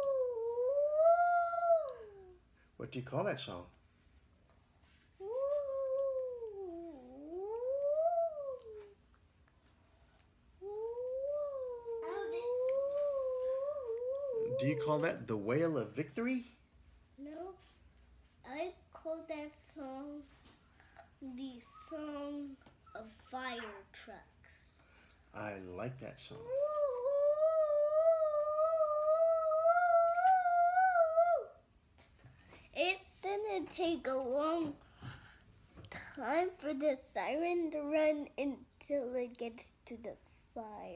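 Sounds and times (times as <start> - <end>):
child wailing like a siren: 0.0 - 2.2, 5.2 - 8.8, 10.6 - 15.0, 26.4 - 31.6.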